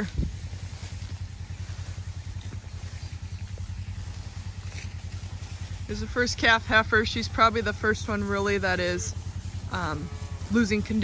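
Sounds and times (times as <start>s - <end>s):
small engine idling: 0.0s - 11.0s.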